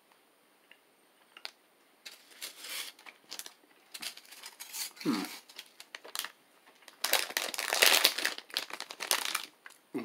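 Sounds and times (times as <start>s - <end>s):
candy packaging crinkling: 1.4s - 9.8s.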